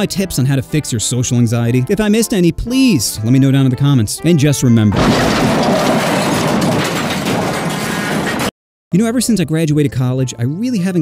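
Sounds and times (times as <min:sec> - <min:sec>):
vehicles colliding: 0:05.0 - 0:08.5.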